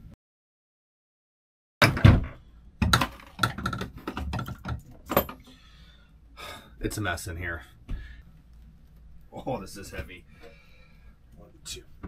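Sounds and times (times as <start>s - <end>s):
plastic pipe fittings knocking: 2.8s - 5.4s.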